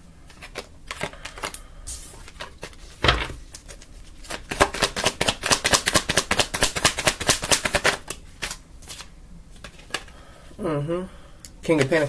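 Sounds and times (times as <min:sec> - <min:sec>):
cards being shuffled: 0:00.3 - 0:10.1.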